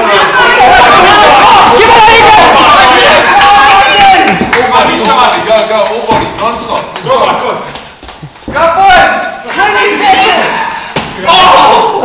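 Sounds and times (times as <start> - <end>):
people shouting encouragement: 0.0 - 4.5, 8.6 - 12.0.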